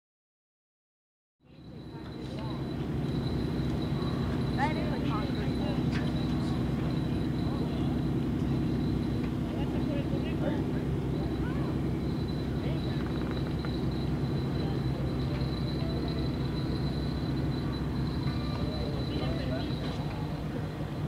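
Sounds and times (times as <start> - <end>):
faint people's voices: 1.4 - 21.0
thin high whine: 1.5 - 21.0
low rumble: 5.2 - 21.0.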